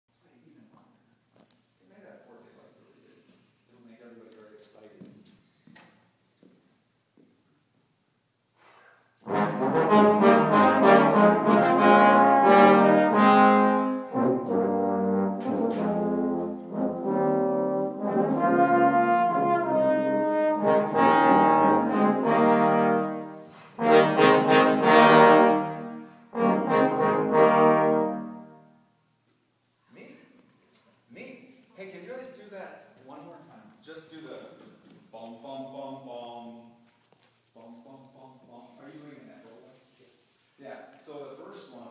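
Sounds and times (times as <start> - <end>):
brass ensemble playing chords: 9.2 - 29.0.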